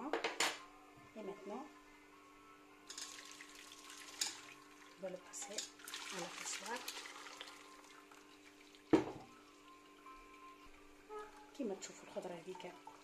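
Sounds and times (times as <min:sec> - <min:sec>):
metal pot clanking: 0:02.9 - 0:03.2, 0:04.1 - 0:04.5, 0:05.3 - 0:05.8
broth pouring through strainer: 0:02.9 - 0:05.0, 0:05.7 - 0:10.6
faint steady hum: 0:07.3 - 0:13.0.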